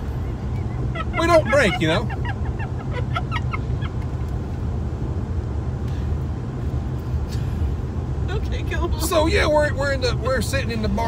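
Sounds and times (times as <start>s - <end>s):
car cabin road and engine noise: 0.0s - 11.0s
woman laughing: 0.5s - 4.1s.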